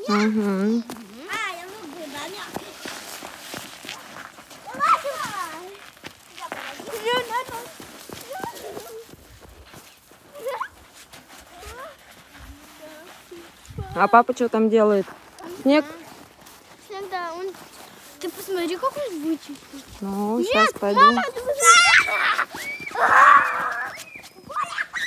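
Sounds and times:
footsteps in snow: 0.0 - 25.0
children shouting and squealing: 1.1 - 14.0, 15.4 - 25.0.

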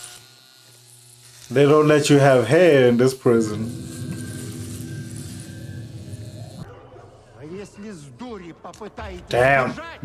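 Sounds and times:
man speaking: 1.5 - 3.9
ominous music: 3.6 - 8.1.

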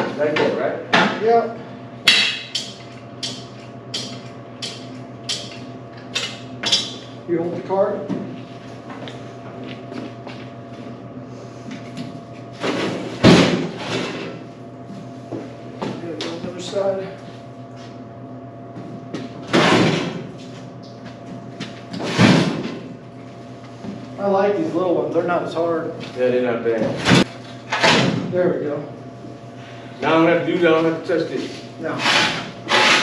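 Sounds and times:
steady electrical hum: 0.0 - 33.0.

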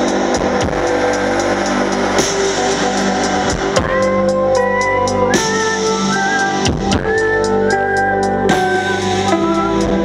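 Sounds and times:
electric bass: 0.0 - 10.0
keyboard chords: 0.0 - 10.0.

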